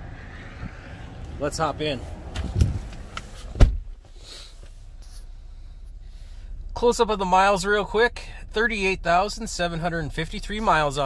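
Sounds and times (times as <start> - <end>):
car cabin background: 0.0 - 11.0
knocks and rustling in car seat: 2.3 - 4.2
loud deep thump: 3.5 - 4.0.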